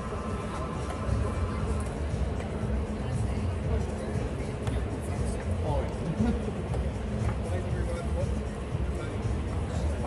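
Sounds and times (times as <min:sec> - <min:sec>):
faint voices murmuring: 0:00.0 - 0:10.0.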